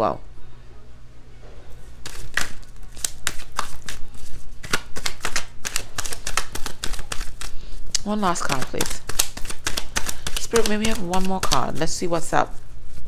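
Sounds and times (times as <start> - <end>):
cards being shuffled: 1.9 - 7.6, 8.2 - 13.0.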